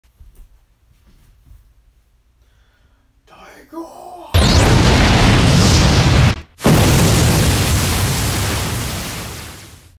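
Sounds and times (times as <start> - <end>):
energy beam blast: 4.4 - 9.8.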